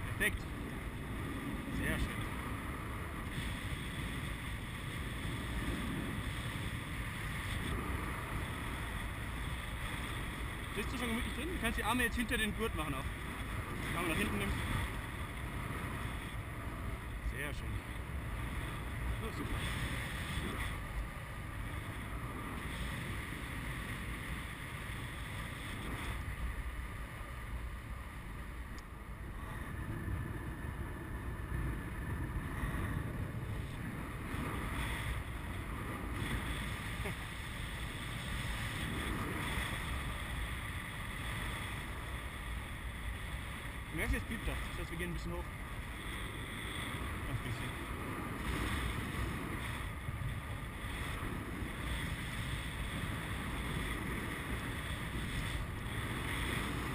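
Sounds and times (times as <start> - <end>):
wind rushing over microphone: 0.0 - 56.9.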